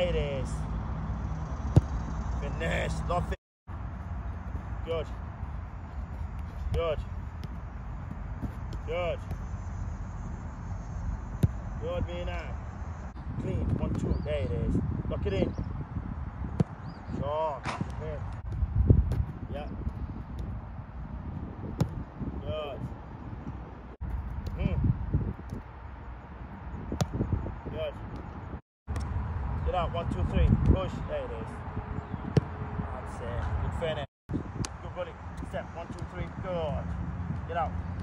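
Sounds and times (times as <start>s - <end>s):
foot kicking soccer ball: 5.8s - 9.5s, 17.6s - 20.6s
sharp ball strike: 17.6s - 19.2s.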